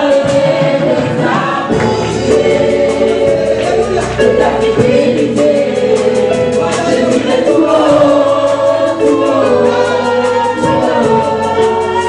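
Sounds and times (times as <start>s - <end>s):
choir singing in harmony: 0.0s - 12.0s
live band with drum beat: 0.0s - 12.0s.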